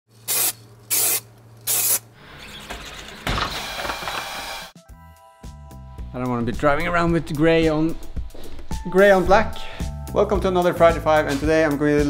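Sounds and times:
aerosol spray can hissing: 0.2s - 2.1s.

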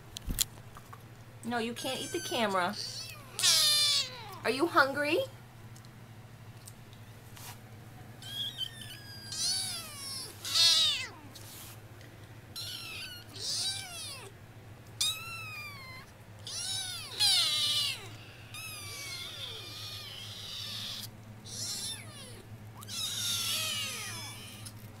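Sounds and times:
kittens mewing: 1.8s - 4.5s, 8.2s - 11.6s, 12.6s - 14.3s, 15.0s - 24.8s.

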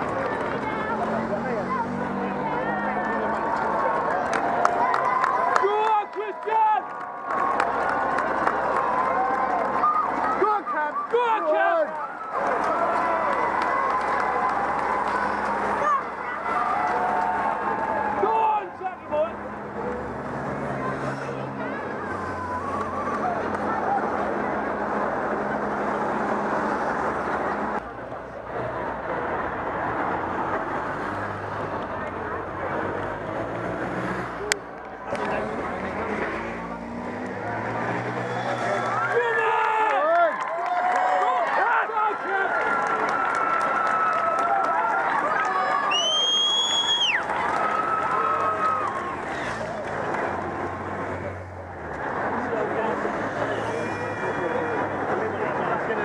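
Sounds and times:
crowd chatter: 0.0s - 56.0s
motorcycles passing: 0.0s - 56.0s
nearby voices: 7.6s - 26.2s, 47.1s - 56.0s.

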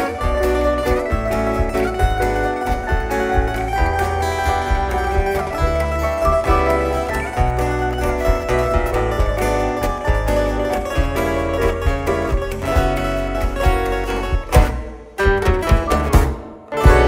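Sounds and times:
band with bass line: 0.0s - 17.0s
plucked guitar melody: 0.0s - 17.0s.

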